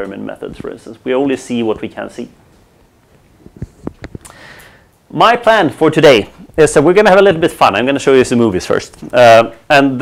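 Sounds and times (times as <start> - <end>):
person sniffing: 4.2 - 4.9.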